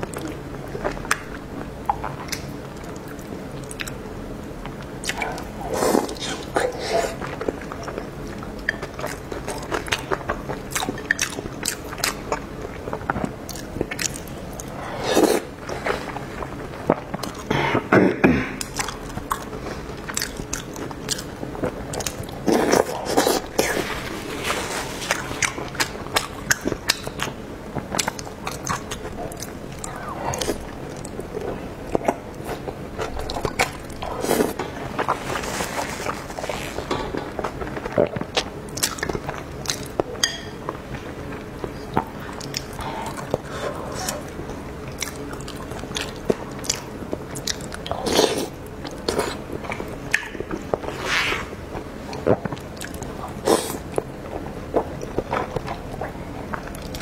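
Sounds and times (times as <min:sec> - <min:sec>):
wet chewing and mouth smacks: 0:18.6 - 0:23.8.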